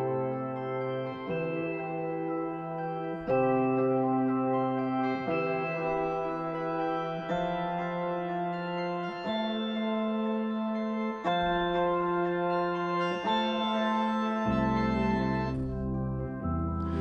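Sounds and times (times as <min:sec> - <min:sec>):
electric piano chords: 0:00.0 - 0:17.0
deep bass: 0:14.5 - 0:17.0.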